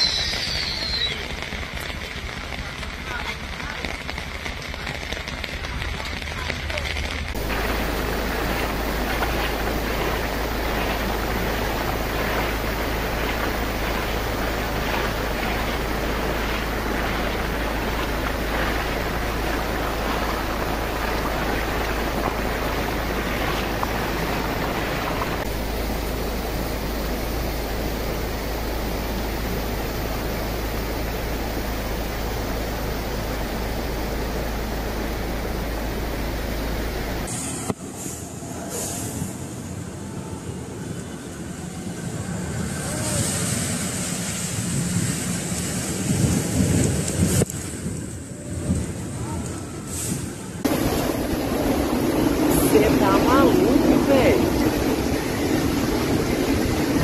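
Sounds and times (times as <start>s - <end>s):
rain hissing: 0.0s - 39.8s, 41.0s - 57.0s
wind: 0.0s - 57.0s.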